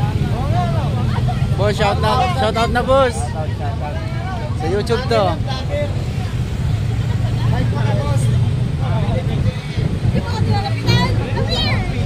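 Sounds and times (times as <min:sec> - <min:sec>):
indistinct voices chatting: 0:00.0 - 0:12.0
street traffic rumble: 0:00.0 - 0:12.0.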